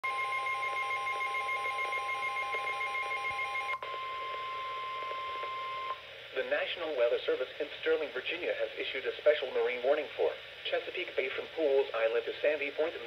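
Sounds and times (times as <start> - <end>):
rapid pulsing alarm beeps: 0.0 - 6.0
steady warning alarm tone: 0.0 - 6.0.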